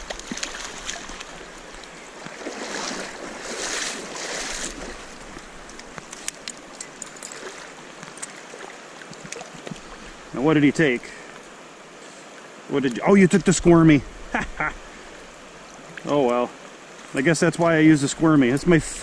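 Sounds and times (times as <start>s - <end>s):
water splashing: 0.0s - 11.6s
creek water running: 0.0s - 19.0s.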